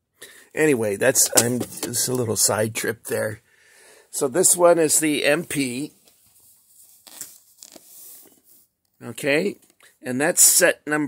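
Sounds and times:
faint rustling and crinkling: 0:05.4 - 0:10.0.

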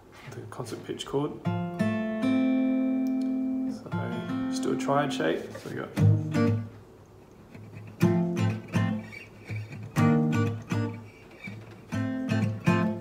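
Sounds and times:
acoustic guitar strummed chords: 0:01.4 - 0:06.8, 0:07.5 - 0:13.0.

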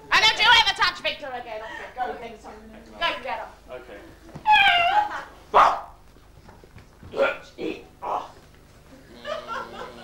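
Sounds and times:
person barking like a dog: 0:05.6 - 0:05.9.

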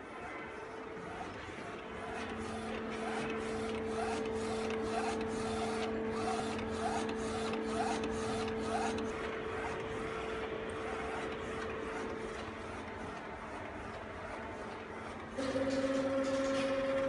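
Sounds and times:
printer humming: 0:00.0 - 0:17.0
print-head carriage moving: 0:00.1 - 0:17.0
lower machine tone: 0:15.4 - 0:17.0.

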